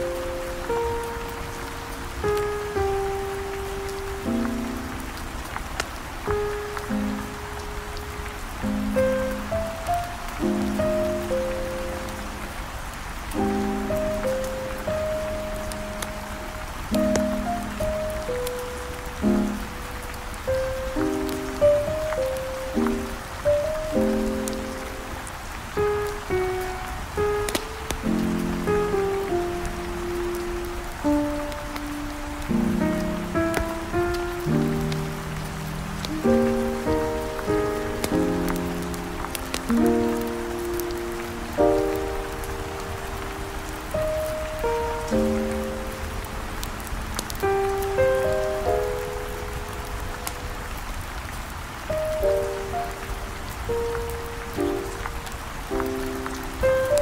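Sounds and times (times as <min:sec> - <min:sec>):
fire crackling: 0:00.0 - 0:57.0
steady rain: 0:00.0 - 0:57.0.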